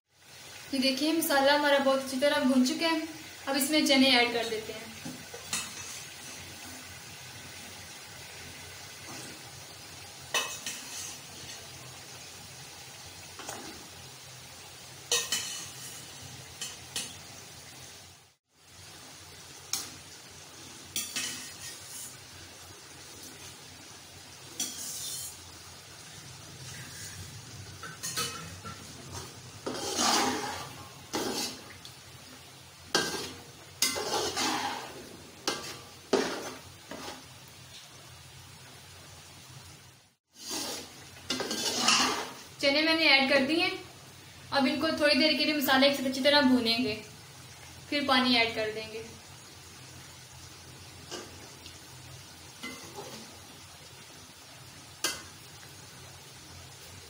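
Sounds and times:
faint sizzle: 0:00.1 - 0:57.0
metal spoon scraping metal pot: 0:24.6 - 0:25.4, 0:29.6 - 0:31.6, 0:33.0 - 0:35.0, 0:40.4 - 0:42.4.

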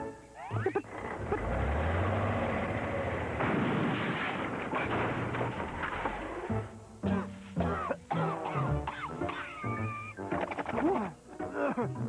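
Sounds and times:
background music: 0:00.0 - 0:02.7, 0:05.8 - 0:12.0
mechanical rumble and clatter: 0:00.8 - 0:06.5.

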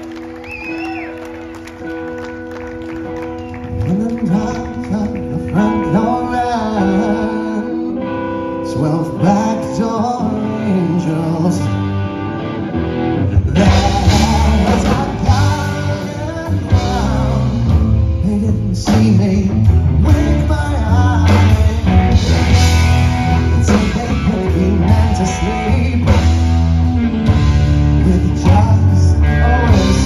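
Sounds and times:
electric guitar phrases: 0:00.0 - 0:30.0
live rock band: 0:00.0 - 0:30.0
drums: 0:12.7 - 0:30.0.

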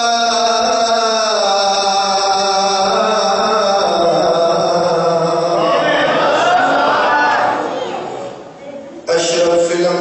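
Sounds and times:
man chanting through microphone: 0:00.0 - 0:06.8, 0:09.0 - 0:10.0.

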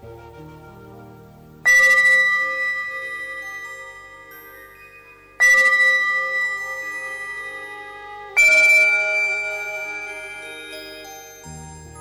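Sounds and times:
bell-like notes ringing: 0:01.6 - 0:12.0.

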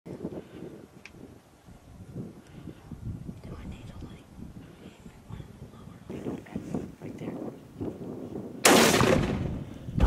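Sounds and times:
rifle shot with echo: 0:08.6 - 0:09.7.

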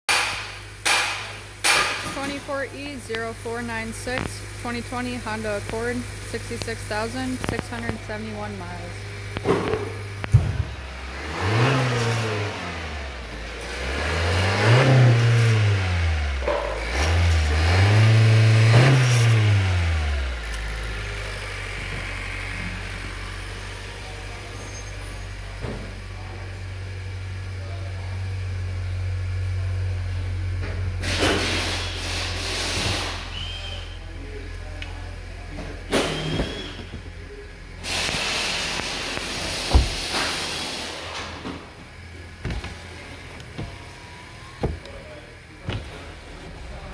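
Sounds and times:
car engine revving and idling: 0:00.1 - 0:46.9.

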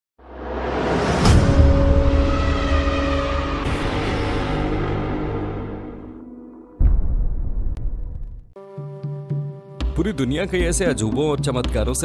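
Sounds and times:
rising whoosh: 0:00.2 - 0:08.6
deep rumble: 0:01.0 - 0:08.6
sustained tones: 0:01.3 - 0:06.9.

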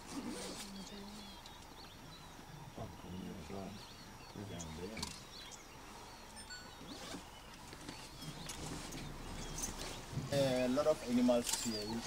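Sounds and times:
birds chirping and whistling: 0:00.1 - 0:12.0.

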